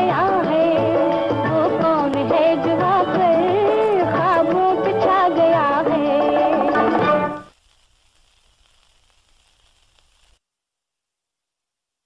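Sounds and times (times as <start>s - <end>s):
old recording hiss and crackle: 0.0s - 12.0s.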